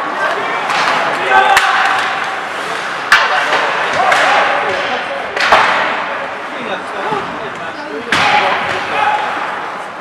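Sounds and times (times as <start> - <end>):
players shouting: 0.0 - 5.0
hockey puck struck: 3.0 - 6.1.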